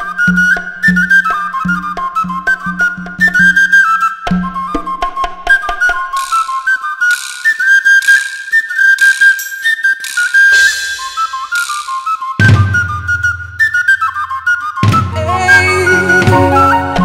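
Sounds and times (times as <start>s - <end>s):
high piping melody: 9.1s - 17.0s.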